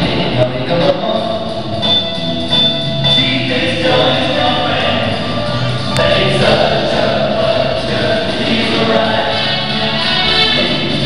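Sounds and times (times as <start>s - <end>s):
dance music with singing: 0.0s - 11.0s.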